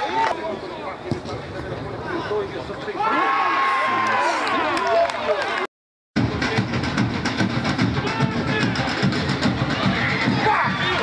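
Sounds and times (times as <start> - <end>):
music with fast drumbeat: 6.2 - 11.0
men shouting together: 10.0 - 11.0.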